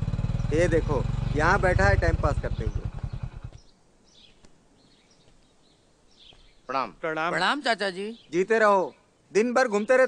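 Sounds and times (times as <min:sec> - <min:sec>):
small engine puttering: 0:00.0 - 0:03.6
faint bird chirps: 0:00.3 - 0:07.0.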